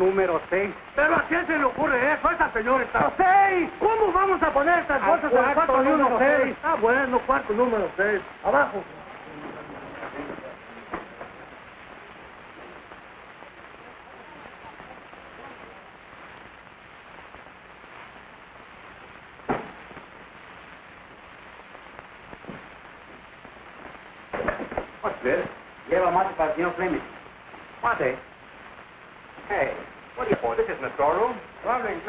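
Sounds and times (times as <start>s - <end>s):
man's voice: 0.0s - 11.4s, 25.0s - 27.1s, 29.5s - 32.0s
film soundtrack hiss: 0.0s - 32.0s
faint voices murmuring: 8.4s - 16.7s
sharp knock: 19.5s - 19.8s.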